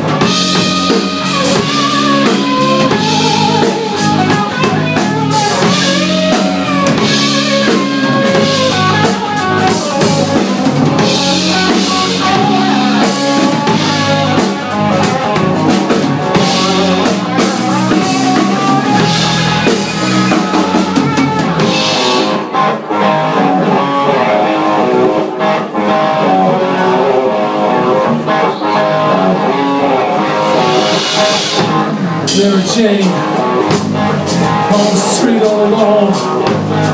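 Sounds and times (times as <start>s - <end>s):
drum kit: 0.0s - 36.9s
electric bass: 0.0s - 36.9s
electric guitar: 0.0s - 36.9s.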